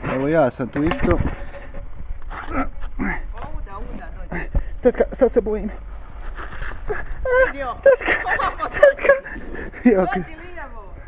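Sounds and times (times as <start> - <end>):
wordless whimpering cries: 6.8 - 9.3.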